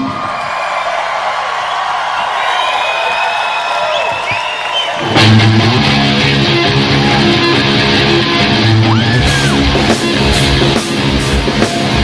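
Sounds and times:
crowd cheering and whooping: 0.0s - 12.0s
rock band playing: 4.8s - 12.0s
ringing electric guitar: 5.0s - 12.0s.

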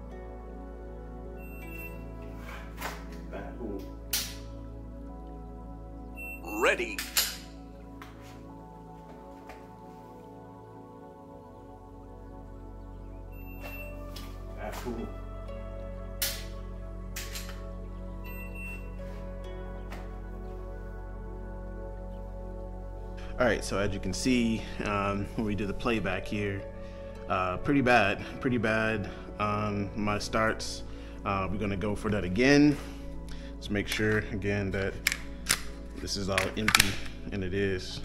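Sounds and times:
soft background music: 0.0s - 38.0s
electronic start beep: 1.4s - 2.1s, 6.2s - 6.7s, 13.3s - 14.0s, 18.2s - 19.0s
clothing rustle: 2.2s - 3.4s, 8.0s - 10.5s
pistol trigger click: 35.0s - 35.8s.

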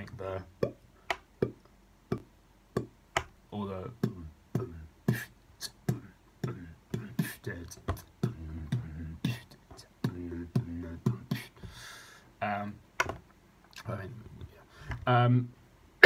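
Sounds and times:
beatboxed mouth pops: 0.1s - 3.3s, 4.0s - 11.6s
breathy hisses: 11.4s - 12.3s.

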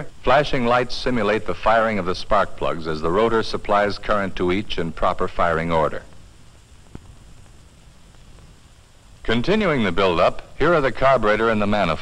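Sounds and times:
film soundtrack hiss and hum: 0.0s - 12.0s.

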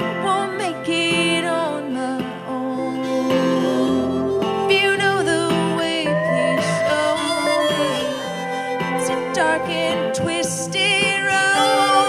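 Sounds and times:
acoustic guitar strumming: 0.0s - 12.0s
steel guitar sliding notes: 0.0s - 12.0s.

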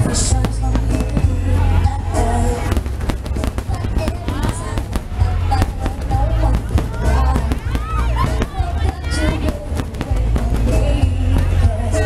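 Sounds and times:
fireworks bangs and cracks: 0.0s - 12.0s
loud music with heavy bass: 0.0s - 12.0s
people's voices: 0.0s - 12.0s.

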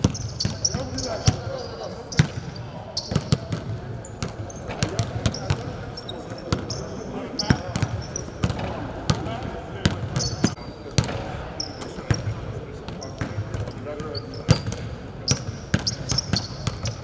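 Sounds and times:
sneaker squeaks: 0.0s - 8.8s, 9.9s - 12.3s, 12.9s - 17.0s.

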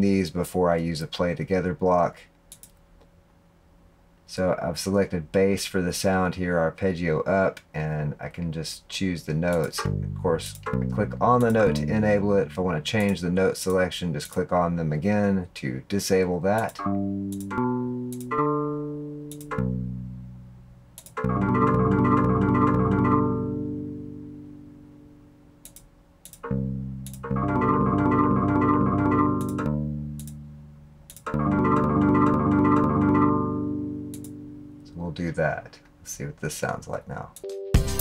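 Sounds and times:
synthesized bass notes: 9.3s - 13.2s, 16.5s - 35.4s
mouse clicks: 16.6s - 17.5s, 19.3s - 19.7s, 21.0s - 21.2s, 25.6s - 27.3s, 29.4s - 30.4s.

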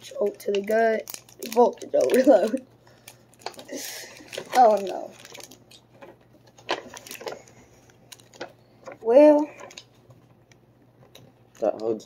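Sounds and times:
cardboard packaging clicks and rustles: 0.0s - 10.2s.

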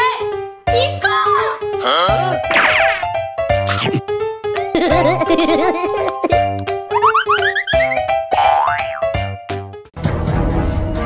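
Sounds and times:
playful bouncy music: 0.0s - 9.9s
cartoon pitch slide effect: 2.5s - 4.0s.

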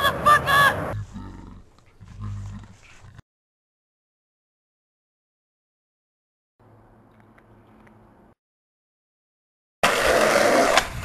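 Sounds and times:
man growling: 1.0s - 3.2s.

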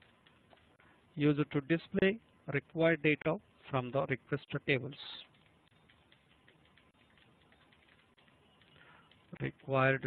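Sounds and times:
faint keyboard typing: 0.0s - 1.1s, 5.0s - 10.0s.

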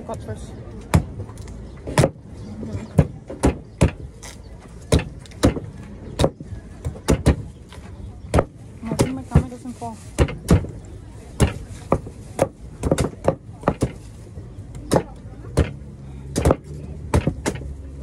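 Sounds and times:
cleaver chopping coconut husks: 0.8s - 2.3s, 2.9s - 7.5s, 8.3s - 10.8s, 11.4s - 14.0s, 14.7s - 17.8s.

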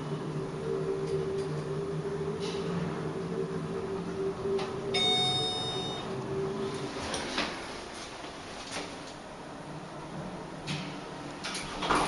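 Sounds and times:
elevator travel hum: 0.0s - 12.0s
electronic arrival chime: 5.0s - 6.1s.

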